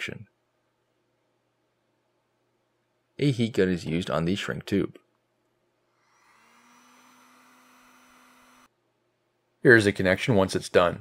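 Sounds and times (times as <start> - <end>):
heat gun fan whirring: 5.9 - 8.7.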